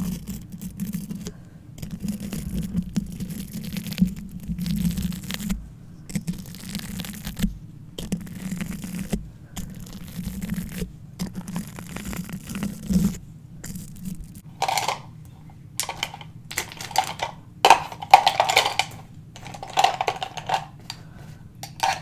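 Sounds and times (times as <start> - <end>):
scratchy handling noise: 0.0 - 22.0.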